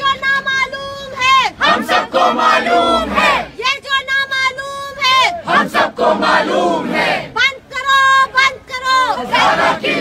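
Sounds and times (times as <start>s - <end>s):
crowd shouting a slogan: 0.0s - 3.9s, 5.0s - 10.0s.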